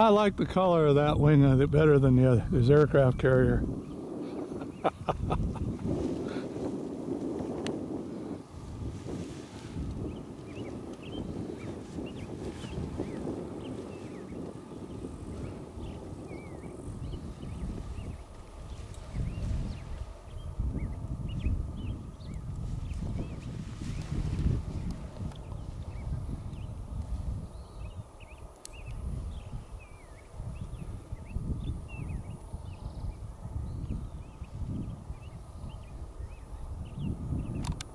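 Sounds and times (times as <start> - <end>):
wind gusting over microphone: 0.0 - 37.9.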